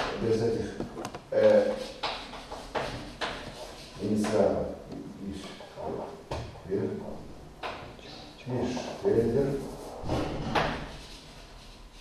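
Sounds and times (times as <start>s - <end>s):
man speaking: 8.4s - 9.7s.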